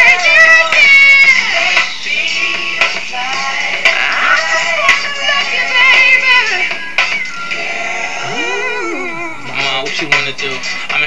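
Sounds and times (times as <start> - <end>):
pop song playing: 0.0 - 11.0.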